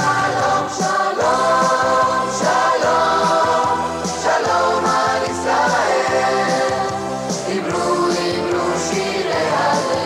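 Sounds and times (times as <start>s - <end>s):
choir singing held notes: 0.0s - 10.0s.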